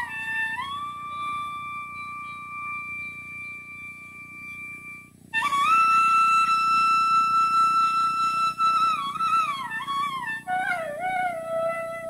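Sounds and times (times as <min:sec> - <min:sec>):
flute holding long note: 0:00.0 - 0:12.0
soft background hiss: 0:00.0 - 0:12.0.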